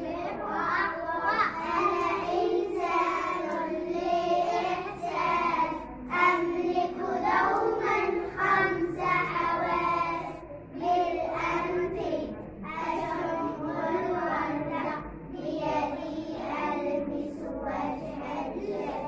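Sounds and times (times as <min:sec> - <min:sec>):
children singing in unison: 0:00.0 - 0:19.0.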